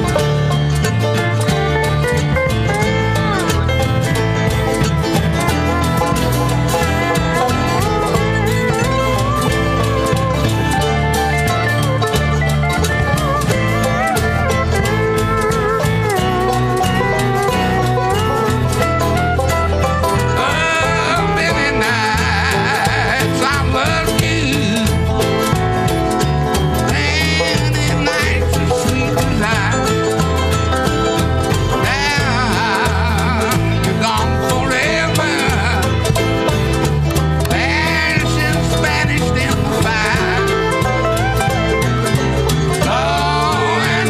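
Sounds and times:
live country band playing: 0.0s - 44.0s
upright bass beat: 0.0s - 44.0s.

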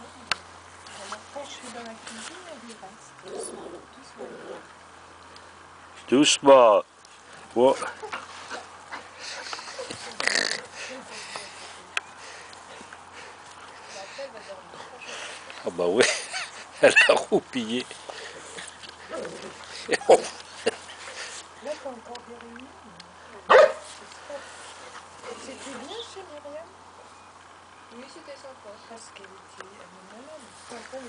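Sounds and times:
dog barking: 23.5s - 23.9s.

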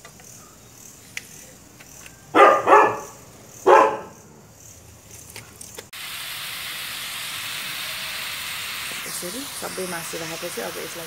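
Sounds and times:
dog barking: 2.3s - 4.2s.

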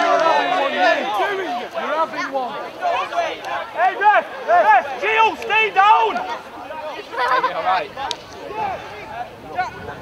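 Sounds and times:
voices shouting: 0.0s - 10.0s.

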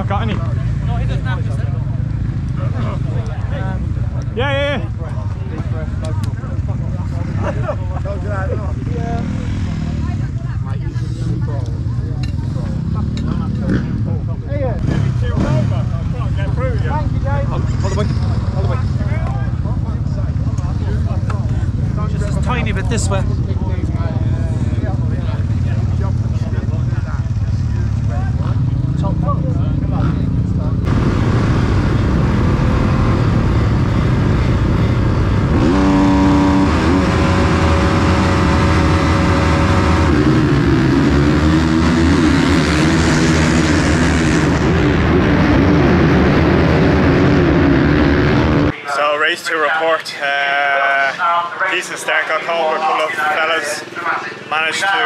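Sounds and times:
motorbike revving: 0.0s - 48.8s
motocross bike engines running: 0.0s - 49.9s.

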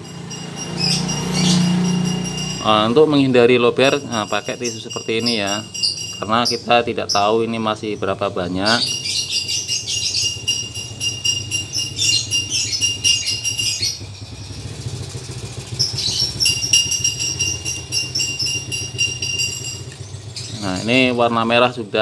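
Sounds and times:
small animals chirping trill: 0.0s - 21.1s
low engine-like hum: 0.0s - 22.0s.

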